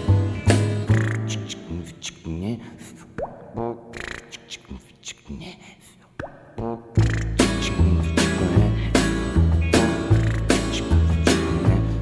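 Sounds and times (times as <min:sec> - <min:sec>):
strummed guitar and bass music: 0:00.0 - 0:01.7, 0:07.0 - 0:12.0.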